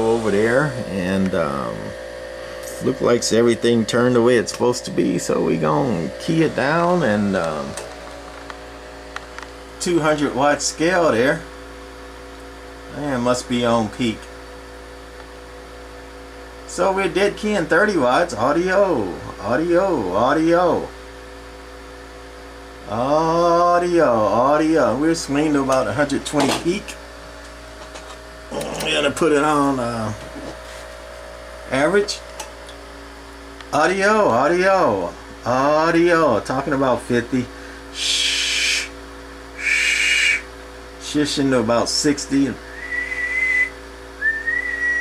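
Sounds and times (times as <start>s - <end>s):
amplifier steady tones: 0.0s - 45.0s
low mains hum: 0.0s - 45.0s
person whistling a high note: 39.6s - 40.4s, 42.7s - 45.0s.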